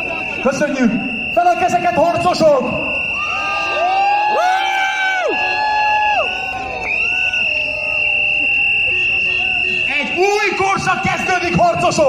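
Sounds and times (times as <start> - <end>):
crowd cheering: 0.0 - 12.0
long high shouts: 2.4 - 8.1.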